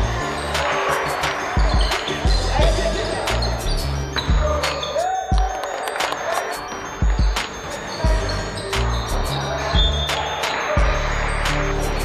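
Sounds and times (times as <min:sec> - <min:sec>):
sneakers squeaking: 0:00.0 - 0:11.7
background music: 0:00.0 - 0:12.0.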